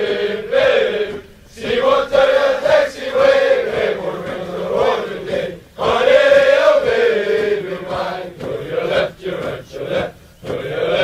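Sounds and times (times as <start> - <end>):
men chanting marching cadence: 0.0 - 11.0.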